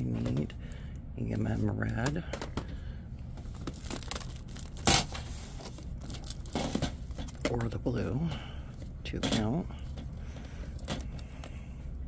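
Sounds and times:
plastic crackle: 3.4s - 7.8s.

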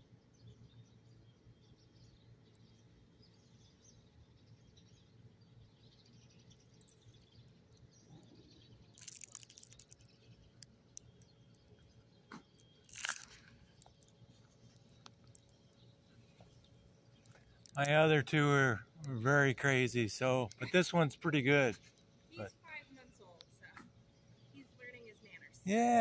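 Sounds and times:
faint outdoor background: 0.0s - 26.0s
crackling crunches: 6.6s - 19.3s.

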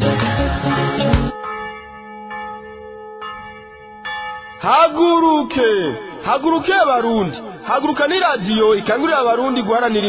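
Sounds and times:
music: 0.0s - 1.4s
bell-like chime: 0.8s - 4.7s.

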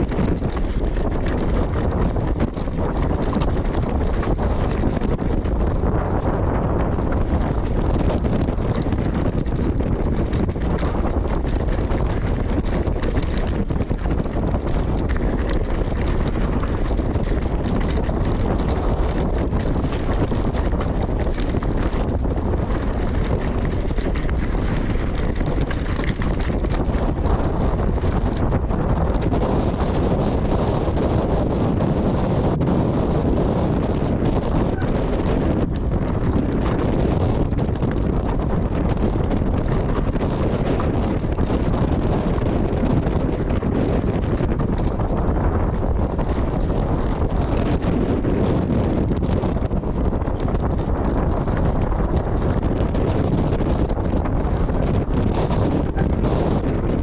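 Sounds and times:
bike rattling over stones: 0.0s - 57.0s
bike tyres rolling: 0.0s - 57.0s
wind buffeting microphone: 0.0s - 57.0s.

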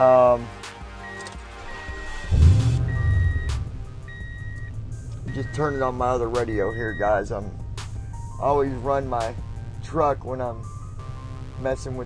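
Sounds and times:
truck engine starting and idling: 1.0s - 11.7s.

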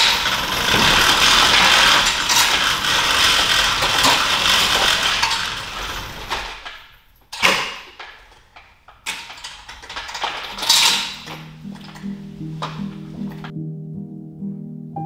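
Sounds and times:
objects knocking and clattering: 0.0s - 13.5s
gentle background music: 10.9s - 15.0s.

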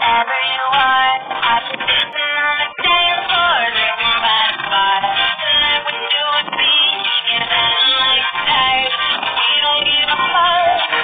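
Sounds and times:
song with steady beat: 0.0s - 11.0s.

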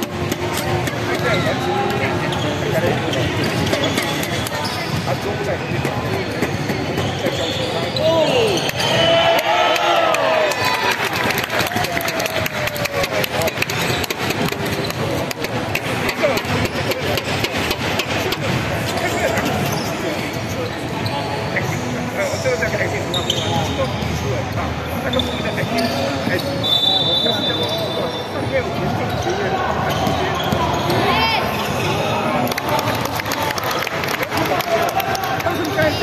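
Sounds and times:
sneaker squeaks: 0.0s - 9.4s, 13.3s - 32.4s
voices in large hall: 0.0s - 36.0s.

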